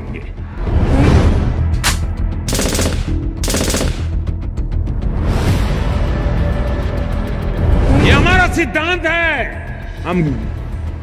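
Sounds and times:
low background music: 0:00.0 - 0:11.0
rapid gunshots: 0:01.9 - 0:04.3.

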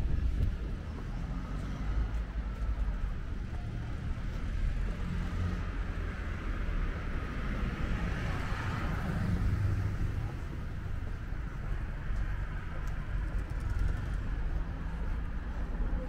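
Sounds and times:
low rumble of traffic: 0:00.0 - 0:16.0.

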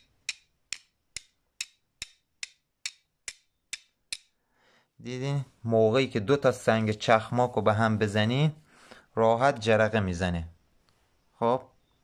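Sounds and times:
flint stones clicking: 0:00.0 - 0:04.4.

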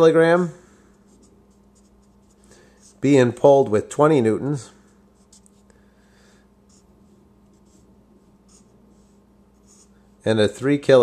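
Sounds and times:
steady low hum: 0:00.0 - 0:11.0
marker drawing on paper: 0:00.9 - 0:03.0, 0:05.1 - 0:05.7, 0:06.7 - 0:10.1.

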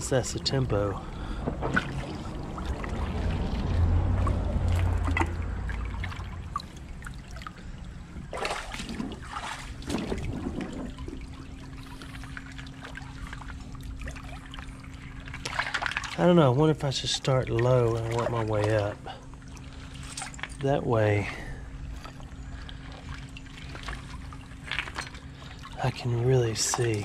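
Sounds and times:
low rushing water: 0:00.0 - 0:27.0
creek water trickling over rocks: 0:02.1 - 0:08.3, 0:10.6 - 0:27.0.

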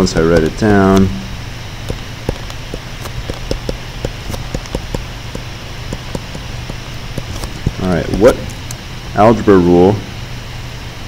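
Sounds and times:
steady low hum: 0:00.0 - 0:11.0
stylus tapping on tablet screen: 0:00.1 - 0:01.1, 0:01.9 - 0:08.7.

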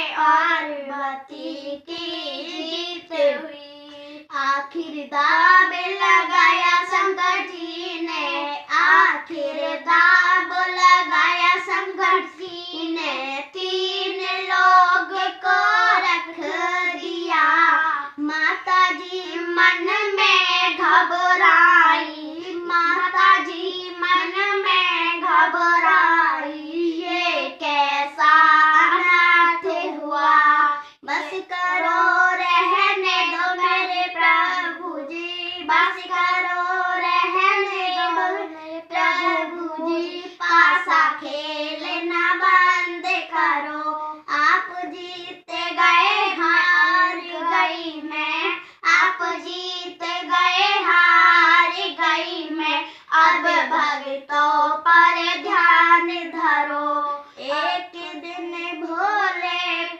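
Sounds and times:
girls singing unaccompanied: 0:00.0 - 0:59.9.

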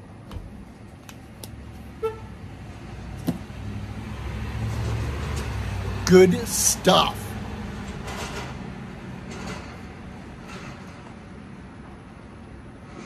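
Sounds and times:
car passing by: 0:02.7 - 0:09.7.

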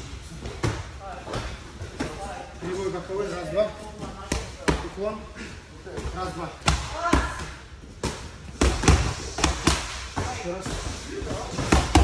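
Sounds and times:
boxing gloves smacking mitts: 0:08.0 - 0:10.2, 0:11.5 - 0:12.0.

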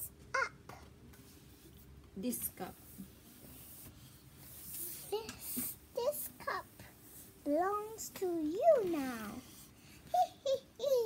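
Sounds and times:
child murmuring: 0:00.0 - 0:00.9.

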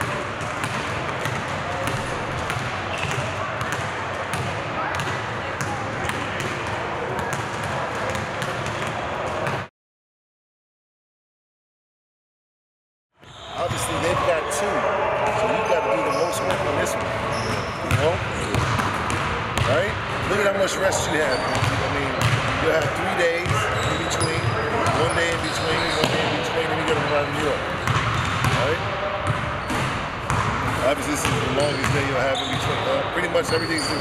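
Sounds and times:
indistinct talking voices: 0:13.5 - 0:27.9
basketballs bouncing on hardwood: 0:17.8 - 0:19.8, 0:21.5 - 0:22.5, 0:27.8 - 0:32.7.

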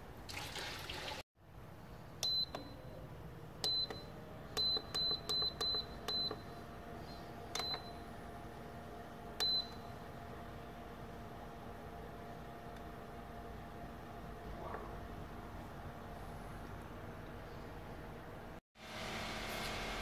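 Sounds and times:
water pouring into metal pot: 0:00.3 - 0:01.2
faint cooker hum: 0:01.4 - 0:20.0.

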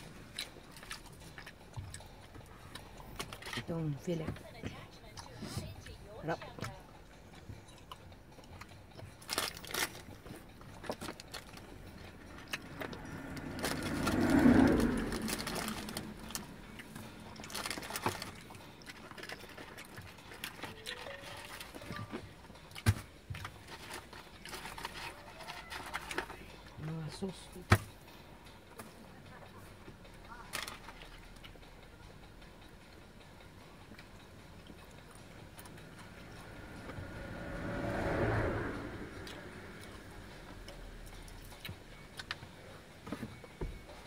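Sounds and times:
vehicle passing by: 0:11.3 - 0:18.5, 0:34.6 - 0:42.0.

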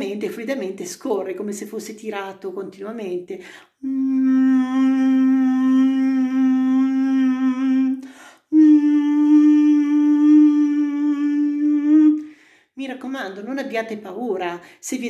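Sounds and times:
man humming: 0:03.8 - 0:12.3.

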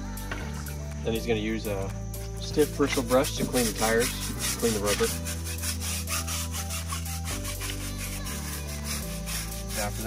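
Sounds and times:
background music with bass line: 0:00.0 - 0:10.0
bristle brush scrubbing rubber tire: 0:02.4 - 0:10.0.

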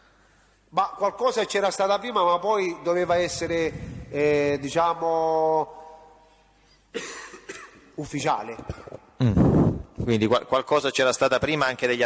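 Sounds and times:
person coughing: 0:06.9 - 0:08.0.

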